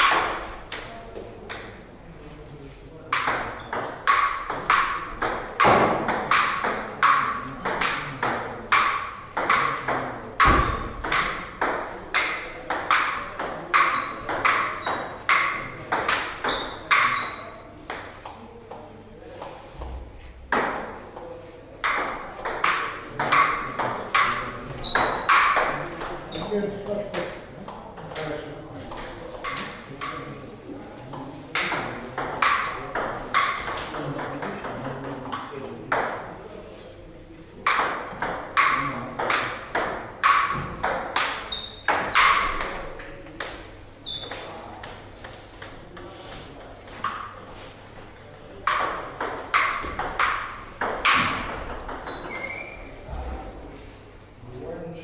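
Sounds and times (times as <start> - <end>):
table tennis ball clicking: 44.2 - 52.5.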